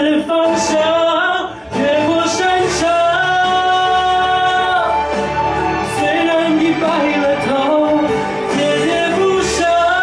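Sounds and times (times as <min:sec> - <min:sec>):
man singing a ballad: 0:00.0 - 0:10.0.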